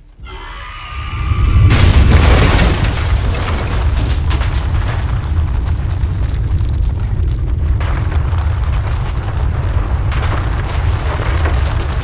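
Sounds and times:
explosion rumbling boom: 1.2s - 12.0s.

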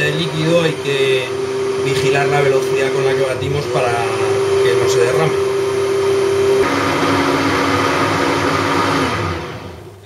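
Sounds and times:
immersion blender motor whine: 0.0s - 10.0s.

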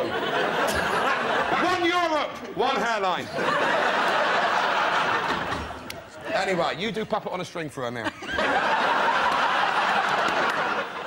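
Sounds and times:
studio audience laughing: 0.0s - 6.7s, 7.9s - 11.0s.

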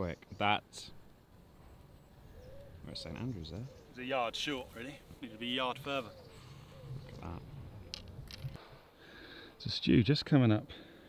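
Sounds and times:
man speaking: 2.9s - 6.2s.

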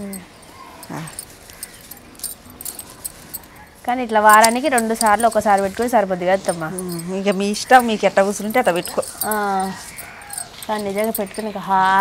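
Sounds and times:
glass bangles jingling: 0.0s - 12.0s
hair rustling: 0.5s - 12.0s
woman speaking: 0.9s - 1.2s, 3.9s - 10.0s, 10.6s - 12.0s.

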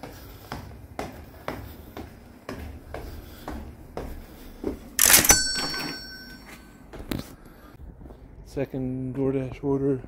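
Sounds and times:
cash register cha-ching: 5.0s - 6.6s.

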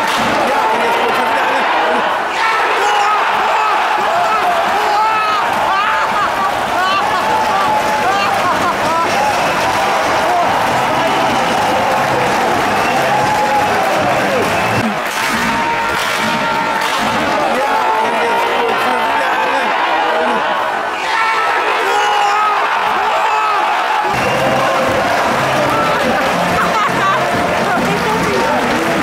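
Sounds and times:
crowd cheering and chanting: 0.0s - 29.0s
people clapping: 0.0s - 29.0s.

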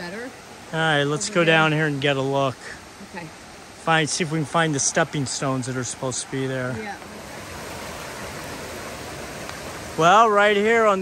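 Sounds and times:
stream rushing over rocks: 0.0s - 11.0s.

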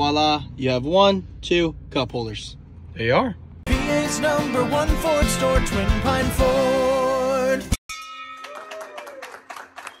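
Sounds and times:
brass hand bell ringing: 7.9s - 9.0s
people clapping: 8.4s - 10.0s.

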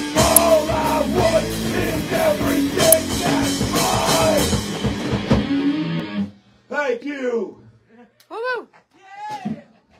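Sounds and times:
live rock band playing: 0.0s - 6.3s.

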